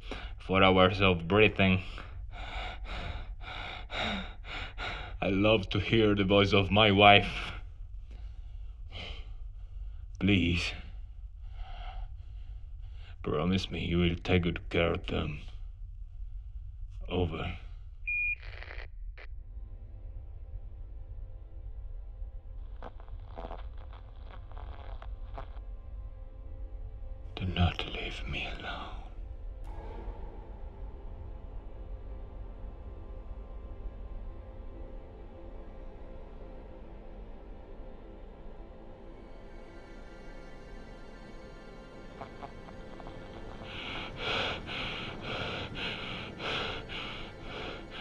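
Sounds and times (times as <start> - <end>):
low rumble: 0.0 - 18.1, 19.0 - 48.0
faint drone: 0.0 - 48.0
crackling radio static: 18.1 - 19.3, 22.7 - 25.6
music bed: 27.2 - 48.0
fast hard breathing in helmet: 43.6 - 48.0.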